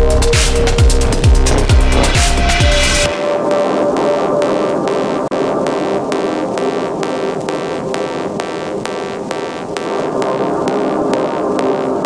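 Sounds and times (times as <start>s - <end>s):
electronic music with fast beat: 0.0s - 12.0s
sustained synth notes: 0.0s - 12.0s.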